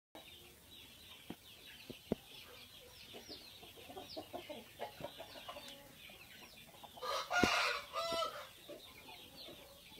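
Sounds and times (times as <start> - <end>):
chickens clucking: 0.2 - 9.9.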